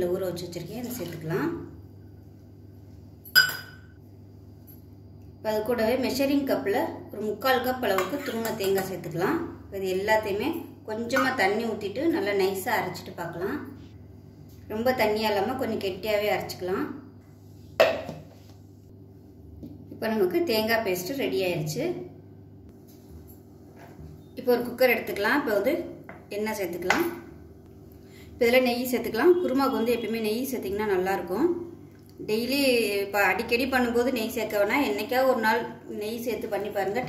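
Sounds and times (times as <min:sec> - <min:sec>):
steady low hum: 0:00.0 - 0:37.0
metal cup clink: 0:03.3 - 0:04.0.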